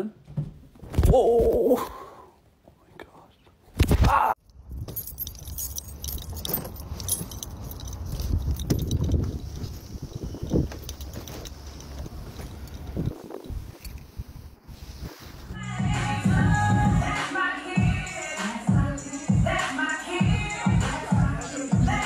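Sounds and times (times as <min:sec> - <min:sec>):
keys jangling: 0:04.5 - 0:14.1.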